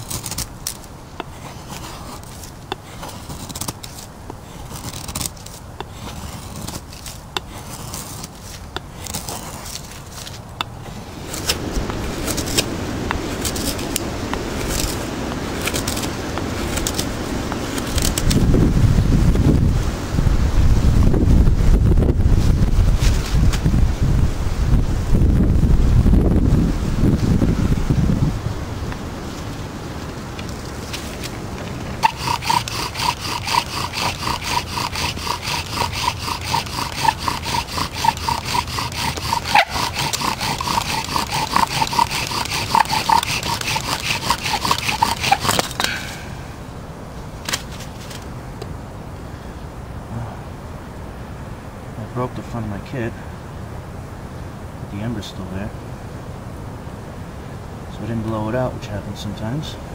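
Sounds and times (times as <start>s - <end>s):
wooden spindle squeaking: 0.0s - 11.6s, 32.0s - 46.0s.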